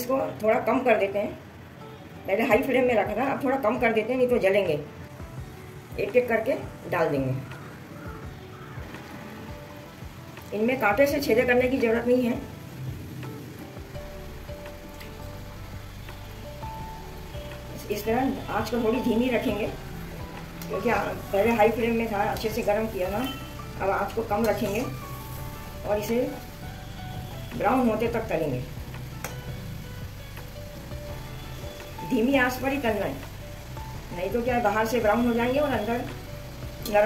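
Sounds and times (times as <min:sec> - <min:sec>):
soft background music: 0:00.0 - 0:37.0
dough sizzling in hot oil: 0:11.2 - 0:37.0.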